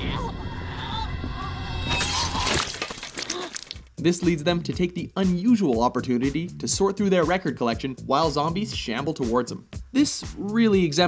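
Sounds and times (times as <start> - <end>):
glass crashing and shattering: 1.9 - 3.8
person narrating: 4.0 - 11.0.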